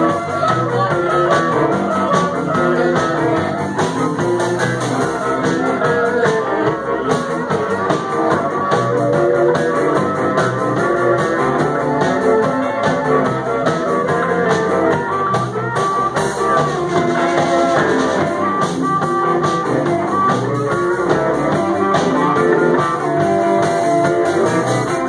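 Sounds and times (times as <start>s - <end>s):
blues harmonica: 0.0s - 25.0s
rock band playing: 0.0s - 25.0s.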